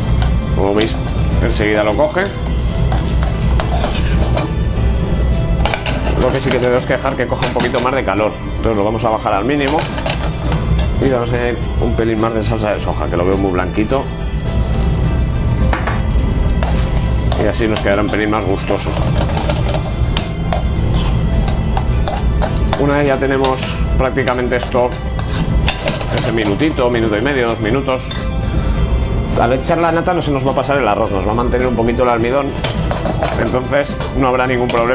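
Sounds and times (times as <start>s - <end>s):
spoon stirring and scraping in pan: 0.0s - 6.8s, 9.6s - 11.0s, 15.6s - 26.7s, 32.5s - 34.9s
steady low rumble: 0.0s - 34.4s
food sizzling: 0.0s - 34.9s.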